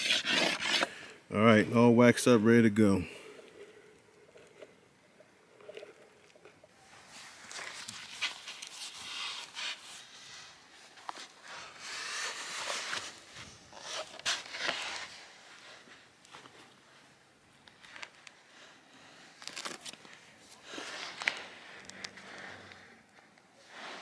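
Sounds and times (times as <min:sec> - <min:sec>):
rustling and scraping in sand: 0:06.9 - 0:17.1, 0:17.7 - 0:24.0.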